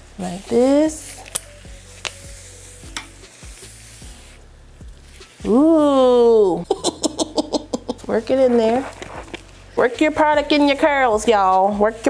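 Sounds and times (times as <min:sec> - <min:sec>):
hands scrunching hair: 0:00.0 - 0:06.6, 0:07.7 - 0:09.6.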